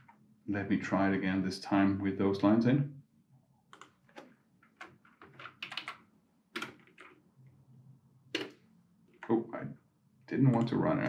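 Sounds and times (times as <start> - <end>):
computer keyboard keys clicking: 3.7 - 6.0, 6.6 - 7.2.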